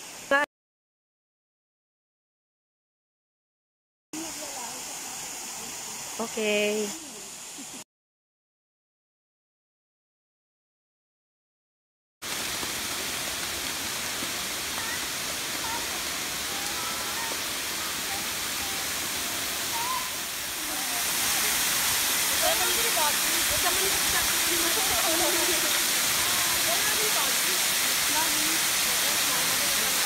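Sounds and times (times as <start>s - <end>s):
waterfall pouring over rocks: 4.2s - 7.8s, 12.2s - 30.0s.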